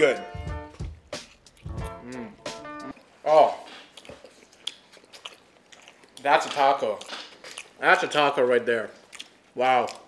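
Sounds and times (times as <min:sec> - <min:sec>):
wet mouth clicks chewing: 0:03.8 - 0:07.8, 0:09.0 - 0:10.0.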